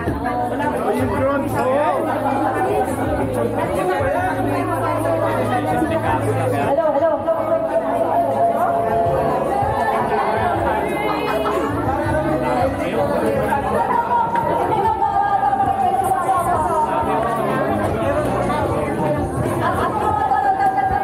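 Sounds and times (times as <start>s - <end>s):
babble of overlapping conversations: 0.0s - 21.0s.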